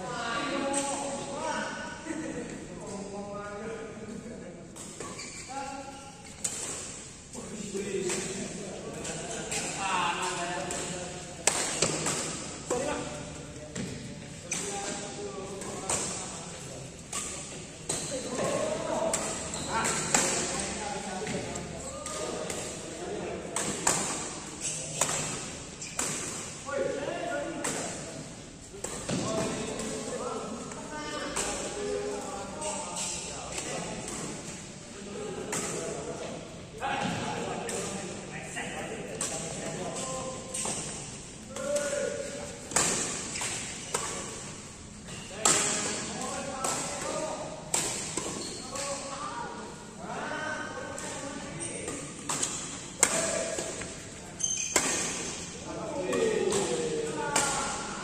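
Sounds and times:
players' voices: 0:00.0 - 0:58.0
rackets hitting shuttlecock: 0:08.0 - 0:12.9, 0:41.6 - 0:44.5, 0:45.1 - 0:49.0, 0:51.8 - 0:55.5, 0:56.1 - 0:57.9.

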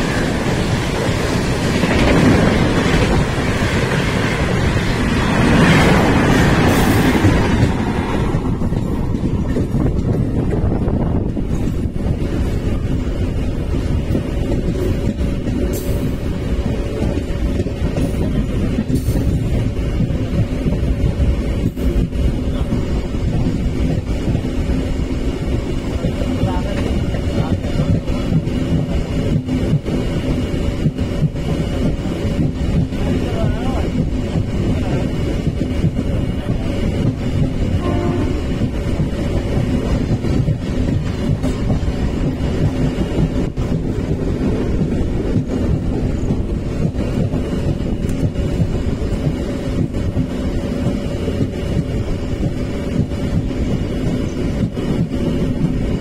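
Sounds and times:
passing train coaches: 0:00.0 - 0:56.0
rush of wind: 0:00.0 - 0:56.0
train wheels rumbling on rails: 0:00.0 - 0:56.0.

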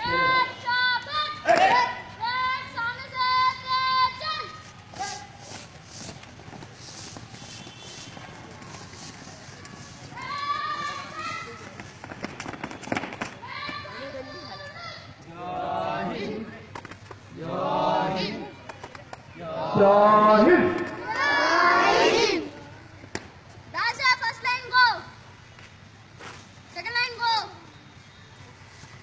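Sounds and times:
person shouting commands: 0:00.0 - 0:05.4, 0:19.4 - 0:22.5
feet marching on pavement: 0:03.3 - 0:15.2.

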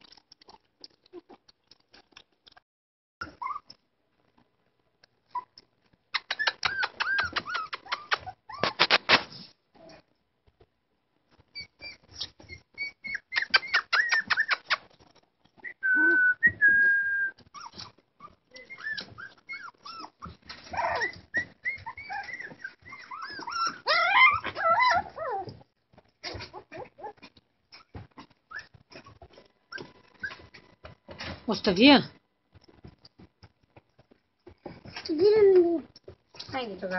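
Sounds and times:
puppies whining and yelping: 0:03.2 - 0:03.8, 0:05.3 - 0:05.6, 0:06.2 - 0:08.9, 0:11.4 - 0:15.0, 0:15.6 - 0:30.6.

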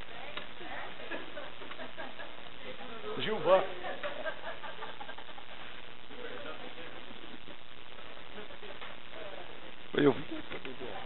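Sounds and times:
faint voices murmuring: 0:00.0 - 0:11.0
steady background hiss: 0:00.0 - 0:11.0.

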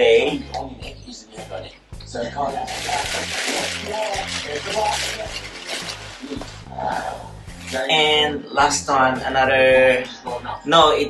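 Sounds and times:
background music with bass: 0:00.0 - 0:11.0
plastic bags rustling: 0:02.6 - 0:06.7, 0:07.5 - 0:08.0.

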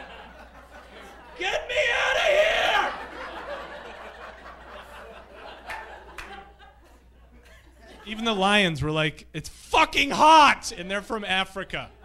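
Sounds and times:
audience chuckling: 0:02.7 - 0:08.1.

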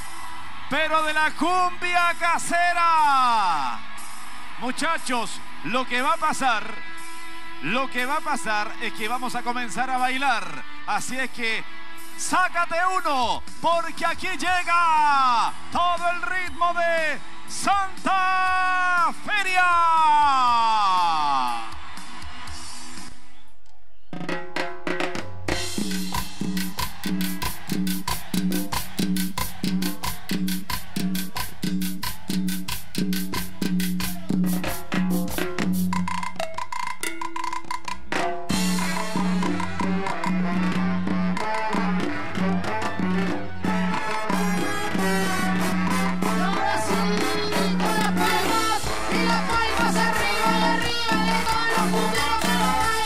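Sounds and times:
percussion and drum groove: 0:24.0 - 0:53.0
live band playing: 0:24.6 - 0:53.0
bass: 0:25.5 - 0:36.3, 0:38.5 - 0:53.0.

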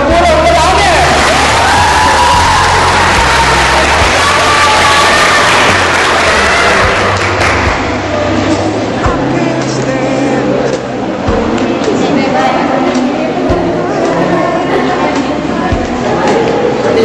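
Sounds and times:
music with bass line: 0:00.0 - 0:17.0
audience cheering and applauding: 0:00.6 - 0:08.1.

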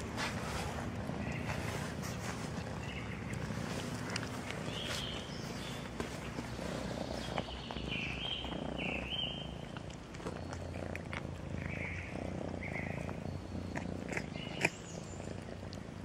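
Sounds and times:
cat purring: 0:00.0 - 0:16.0.

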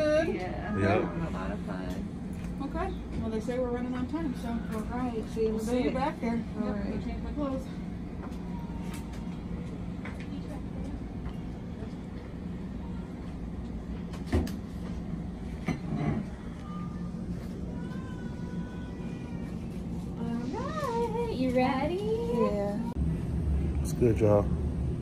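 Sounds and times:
steady low room hum: 0:00.0 - 0:25.0.

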